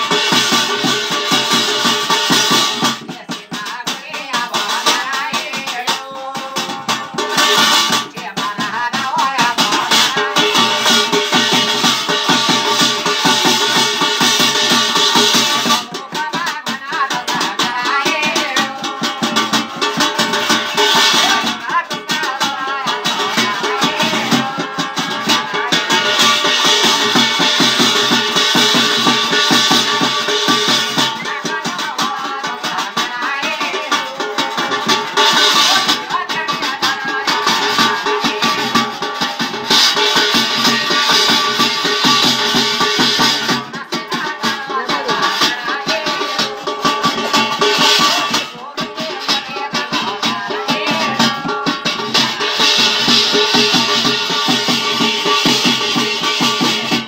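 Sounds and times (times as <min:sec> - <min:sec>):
fast rattling percussion beat: 0:00.0 - 0:57.0.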